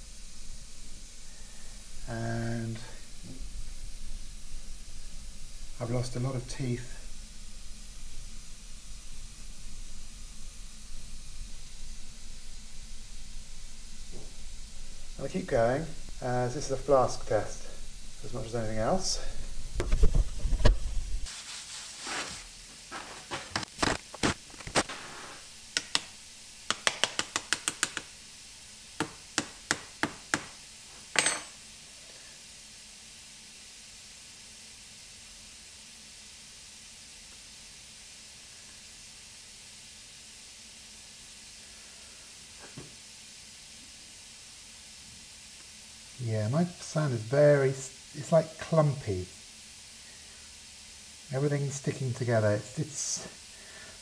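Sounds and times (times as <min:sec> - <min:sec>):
faint steady background noise: 0:00.0 - 0:54.0.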